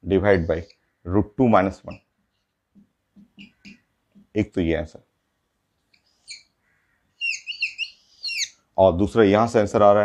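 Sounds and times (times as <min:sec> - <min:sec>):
whiteboard marker squeaking: 0:03.2 - 0:03.9, 0:07.2 - 0:08.5.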